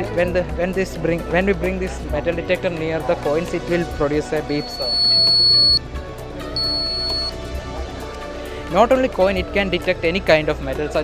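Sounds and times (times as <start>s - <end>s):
metal detector beep: 4.6s - 5.8s, 6.6s - 7.4s.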